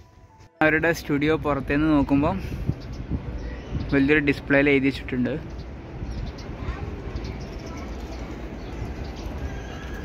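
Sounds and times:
open-air crowd ambience: 0.3s - 10.0s
wind rumbling on microphone: 1.0s - 10.0s.

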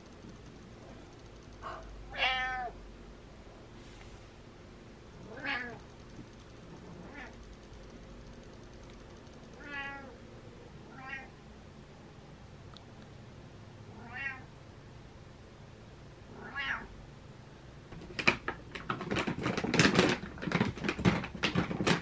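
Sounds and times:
cat meowing: 1.6s - 2.8s, 5.2s - 5.8s, 7.0s - 7.3s, 9.6s - 10.2s, 10.9s - 11.3s, 13.9s - 14.5s, 16.3s - 16.9s.

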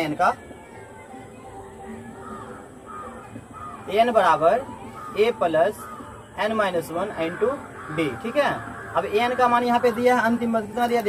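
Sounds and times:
bird calling: 1.6s - 11.0s.

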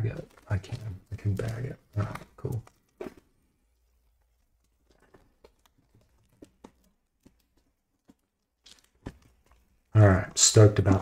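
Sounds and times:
plastic bag rustling: 0.0s - 9.9s.

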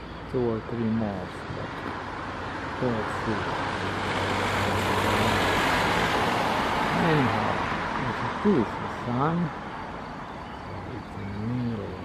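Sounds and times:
road traffic hiss and hum: 0.0s - 12.0s.

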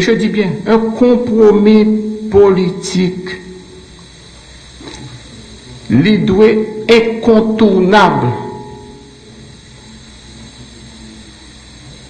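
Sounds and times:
faint hum: 0.0s - 12.0s
steady low hiss: 0.0s - 12.0s.

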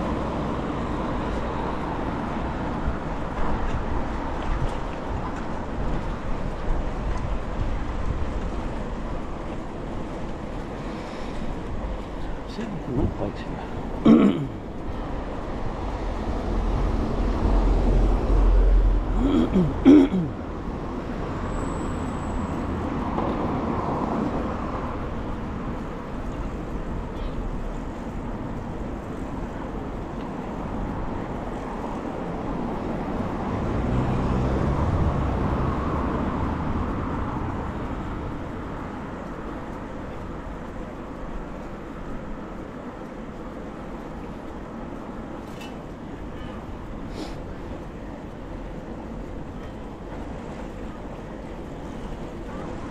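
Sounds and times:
street traffic: 0.0s - 52.9s.

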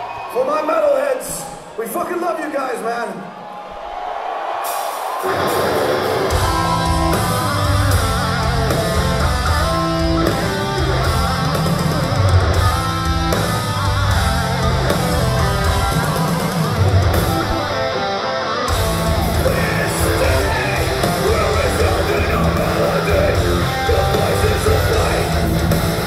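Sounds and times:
metal band playing live: 5.1s - 26.0s.

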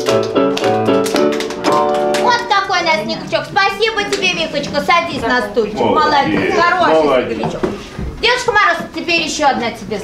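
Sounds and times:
lively piano tune: 0.0s - 5.6s.

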